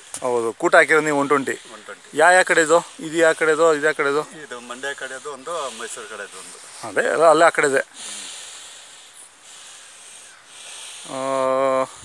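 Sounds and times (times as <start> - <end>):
steady high hiss: 0.0 - 12.0
man talking: 0.2 - 7.9, 11.1 - 12.0.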